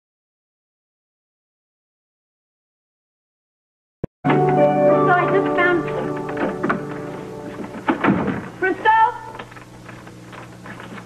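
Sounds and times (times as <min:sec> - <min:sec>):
steady low hum: 0:04.3 - 0:11.0
woman calling out: 0:08.6 - 0:09.4.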